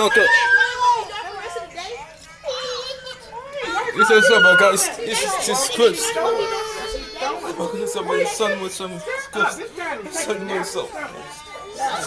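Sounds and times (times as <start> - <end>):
children's voices: 0.0 - 12.0.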